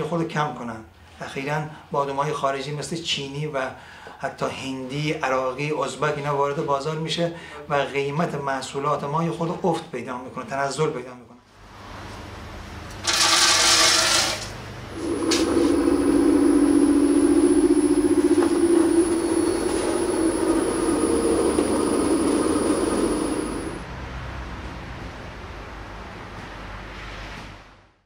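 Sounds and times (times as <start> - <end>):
peanuts rattling into plastic hopper: 13.0 - 14.5
grinder motor humming and whining: 14.9 - 23.8.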